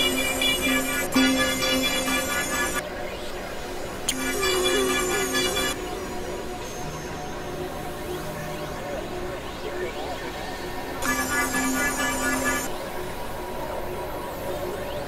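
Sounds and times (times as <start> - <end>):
stuttering high synth tones: 0.0 - 2.8, 11.0 - 12.7
synthesizer drone: 0.0 - 15.0.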